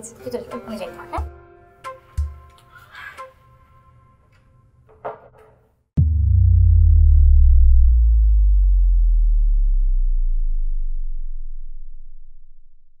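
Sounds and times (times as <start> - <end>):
deep electronic sub-bass boom: 6.0 - 13.0.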